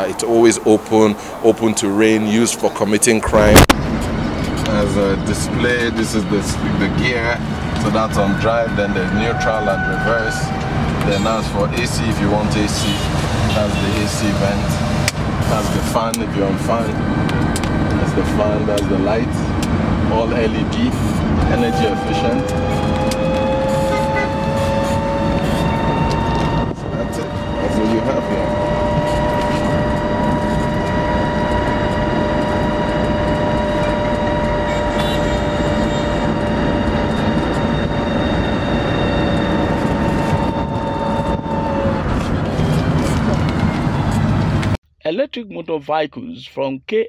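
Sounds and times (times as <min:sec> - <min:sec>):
road and wind rumble: 0:00.0 - 0:44.8
electric motor whine: 0:21.4 - 0:44.4.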